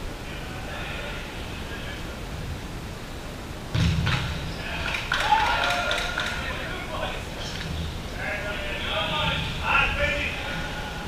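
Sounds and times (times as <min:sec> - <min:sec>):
players shouting in echoing hall: 0:04.1 - 0:07.3, 0:08.1 - 0:11.0.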